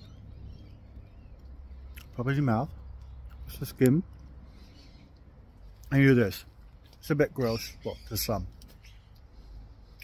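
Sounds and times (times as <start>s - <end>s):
faint low background rumble: 0.0s - 10.0s.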